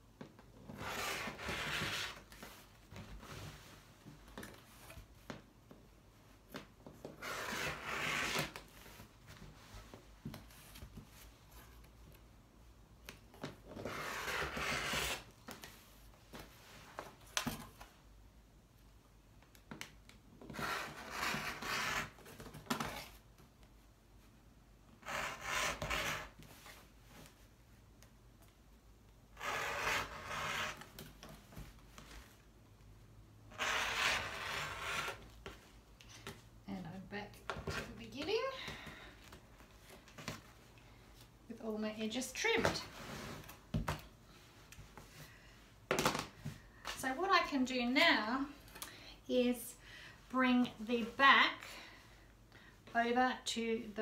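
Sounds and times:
rotary cutter slicing fabric: 29.4 - 30.8, 33.5 - 35.2.

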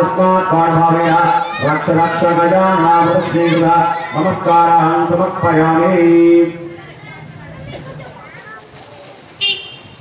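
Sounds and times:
low background murmur: 0.6 - 10.0.

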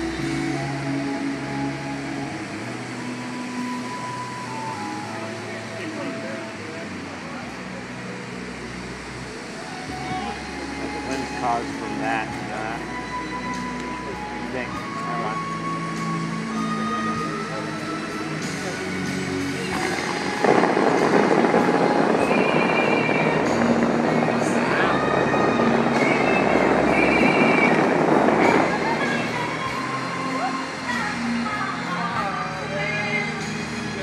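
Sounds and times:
music over loudspeakers: 0.0 - 8.0, 8.6 - 34.0
fountain water jets rushing: 0.0 - 34.0.

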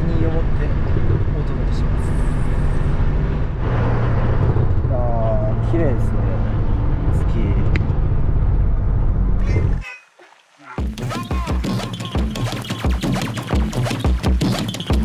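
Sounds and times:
engine and road noise in truck cab: 0.0 - 9.8.

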